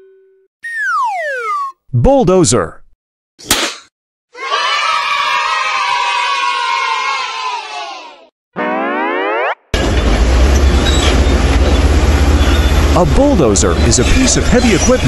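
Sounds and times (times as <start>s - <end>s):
rising cartoon whistle: 0.6s - 1.8s
children cheering and shouting: 4.3s - 8.3s
heavy diesel machinery rumbling: 9.8s - 15.0s.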